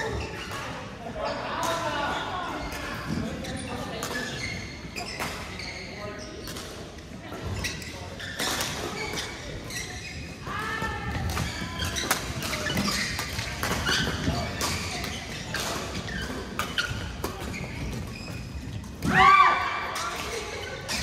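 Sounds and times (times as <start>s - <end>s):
rackets hitting shuttlecocks: 10.4s - 19.2s.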